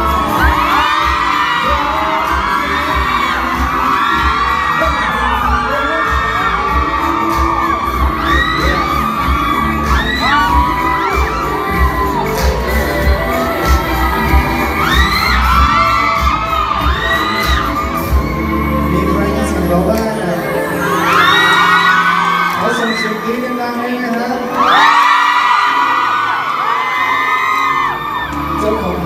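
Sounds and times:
crowd screaming and cheering: 0.0 - 29.0
pop song over loudspeakers: 0.0 - 29.0.

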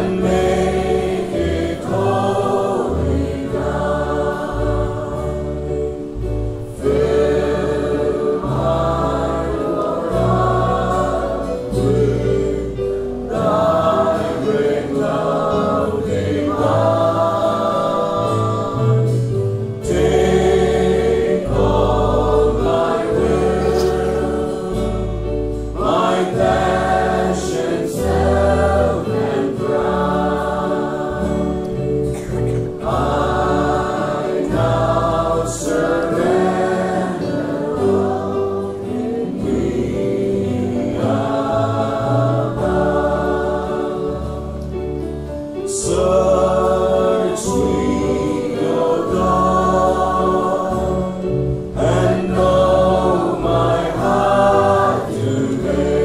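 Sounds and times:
choir singing: 0.0 - 56.0
sustained low bass notes: 0.0 - 56.0.

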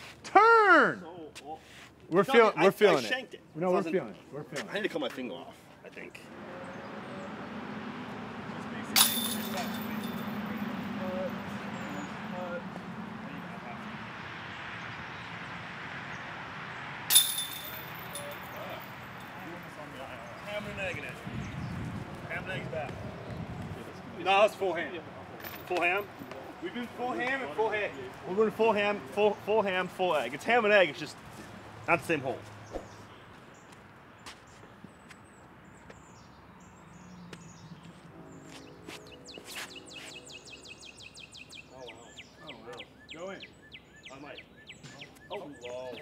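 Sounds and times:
outdoor background noise: 0.0 - 46.0.

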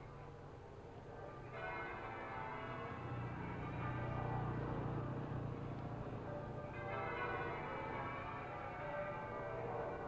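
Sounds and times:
faint church bells ringing: 1.2 - 10.0.

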